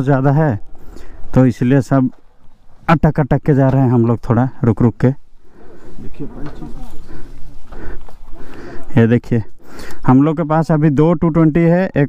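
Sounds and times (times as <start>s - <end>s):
men's voices chattering: 0.0s - 11.9s
man narrating: 1.3s - 2.2s, 2.9s - 5.2s, 8.7s - 12.0s.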